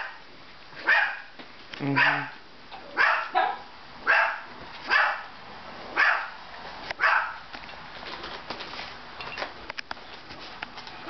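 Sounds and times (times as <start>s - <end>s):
dog barking: 0.8s - 1.3s, 1.9s - 5.3s, 6.0s - 6.4s, 7.0s - 7.4s.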